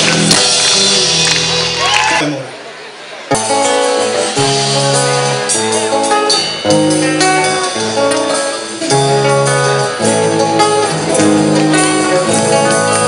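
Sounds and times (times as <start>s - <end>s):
guitar melody: 0.0s - 2.1s, 3.3s - 13.0s
band playing folk music: 0.0s - 2.6s, 3.3s - 13.0s.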